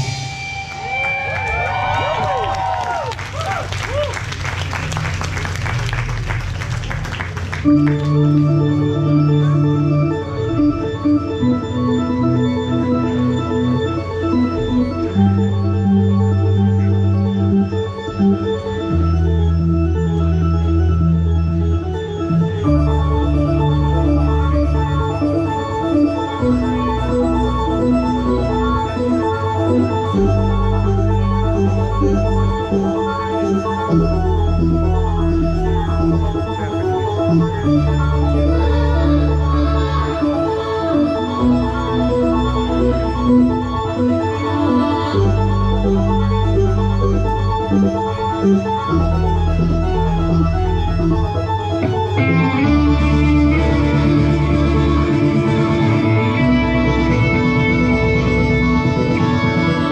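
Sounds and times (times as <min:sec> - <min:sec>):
applause: 0:00.7 - 0:08.3
organ-like keyboard chords: 0:05.0 - 0:59.9.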